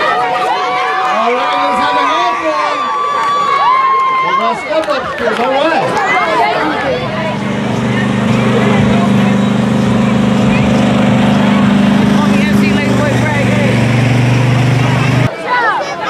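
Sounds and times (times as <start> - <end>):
small engine humming: 5.9 - 15.3.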